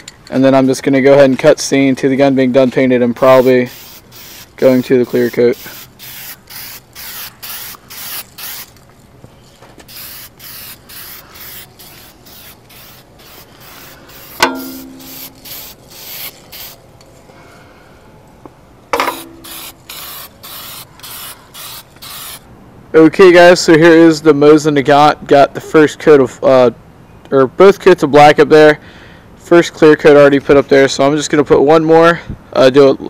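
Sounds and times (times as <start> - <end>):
spray-paint can hissing: 3.3 - 8.8, 9.8 - 16.8, 19.1 - 22.4.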